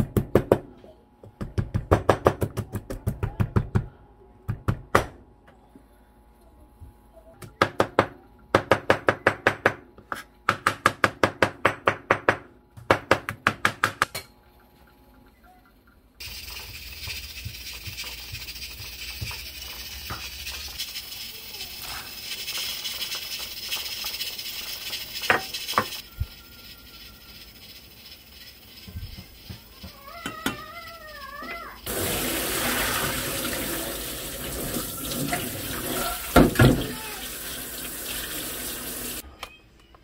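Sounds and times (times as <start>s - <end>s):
wooden spoon stirring: 16.2s - 31.0s
kitchen tap running: 16.2s - 39.2s
pot of water boiling: 16.2s - 39.2s.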